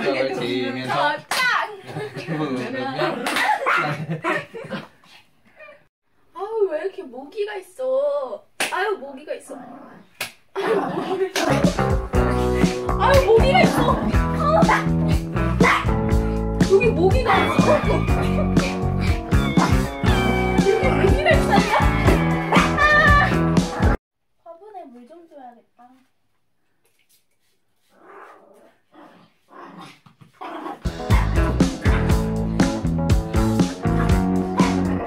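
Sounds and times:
background music: 11.4s - 24.0s, 30.8s - 35.0s
small dog barking and growling: 28.0s - 32.2s.

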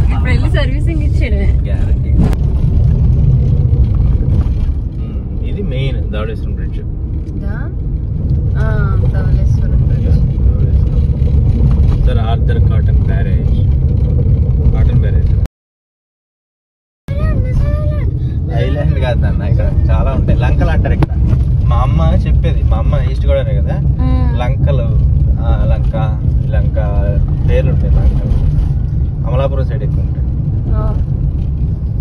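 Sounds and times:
car road and engine rumble: 0.0s - 15.5s, 17.1s - 32.0s
high-pitched drawn-out voice: 17.1s - 19.9s
people chattering: 18.5s - 20.9s.

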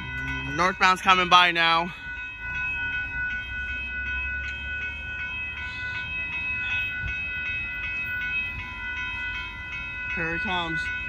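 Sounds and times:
crossing warning bell ringing: 0.0s - 11.0s.

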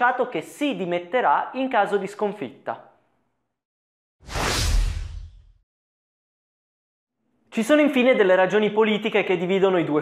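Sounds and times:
whoosh transition effect: 4.2s - 5.6s.

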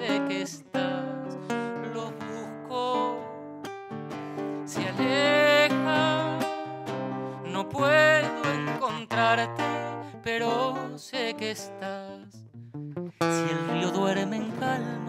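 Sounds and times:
man singing: 0.0s - 3.5s, 4.6s - 12.4s, 13.2s - 15.0s
acoustic guitar samba accompaniment: 0.0s - 15.0s.

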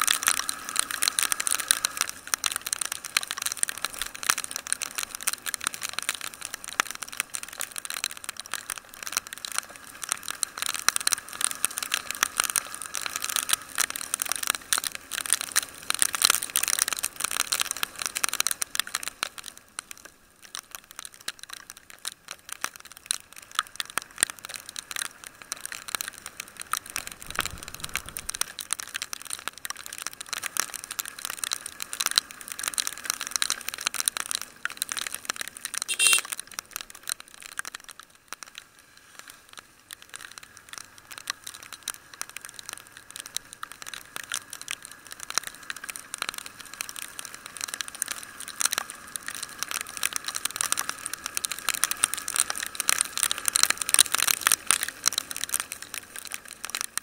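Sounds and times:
raindrops striking camera: 0.0s - 57.0s
low rumble: 27.0s - 28.4s.

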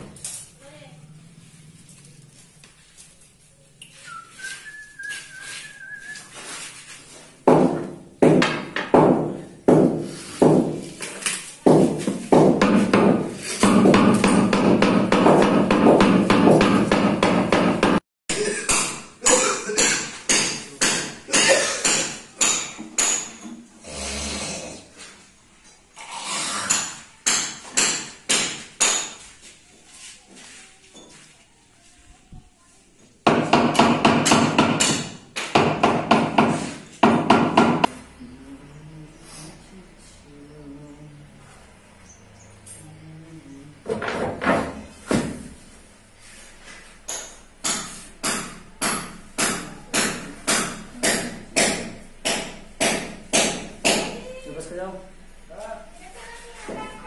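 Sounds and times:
hammer knocking on marble slab: 7.4s - 10.8s, 11.7s - 18.0s, 33.3s - 37.9s.

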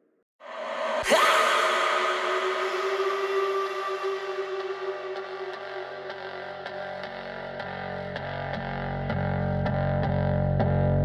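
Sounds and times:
held synth drone chord: 0.4s - 10.6s.

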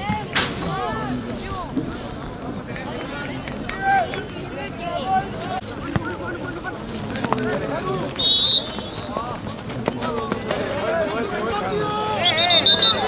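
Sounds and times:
voices shouting: 10.7s - 13.0s.

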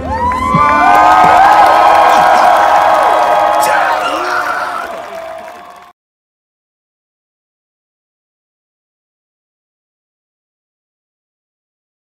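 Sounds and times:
crowd cheering and whooping: 0.0s - 5.9s.

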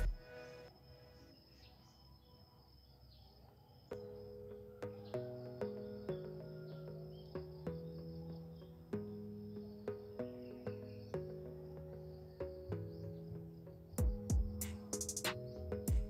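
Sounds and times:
keyboard background music: 0.0s - 1.3s, 3.6s - 16.0s
crickets chirring: 0.0s - 15.5s
drum beat: 14.0s - 15.3s.

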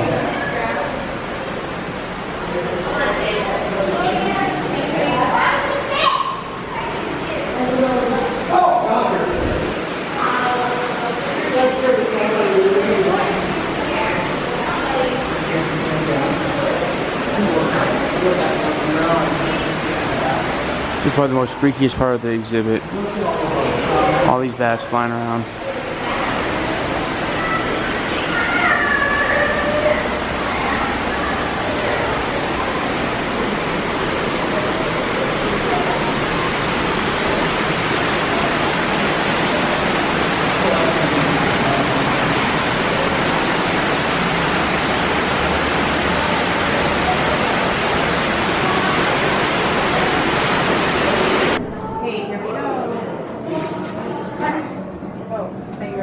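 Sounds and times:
faint voices: 0.0s - 56.0s
loud rushing noise: 5.4s - 21.2s, 25.2s - 52.3s.

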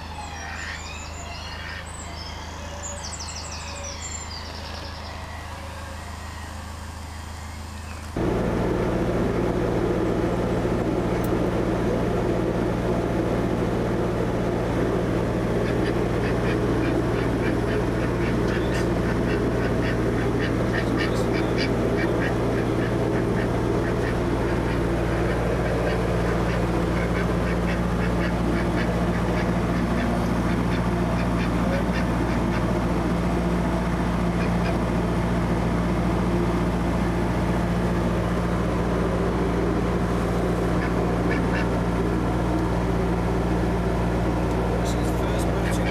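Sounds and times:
boat diesel engine humming: 0.0s - 45.9s
duck quacking: 15.6s - 32.8s, 34.3s - 34.8s, 40.7s - 41.8s.

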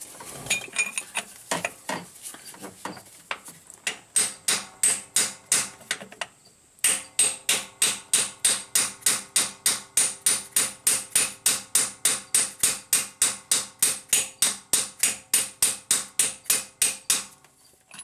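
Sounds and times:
hammer tapping on steel: 3.9s - 5.8s, 6.8s - 17.3s.

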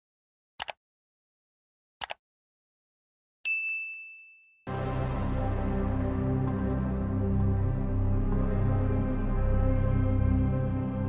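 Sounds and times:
notification bell chime: 3.5s - 4.6s
background music: 4.7s - 11.0s.

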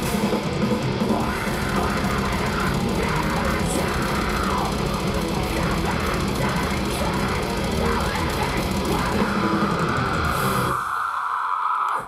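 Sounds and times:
death metal band playing live: 0.0s - 12.0s.

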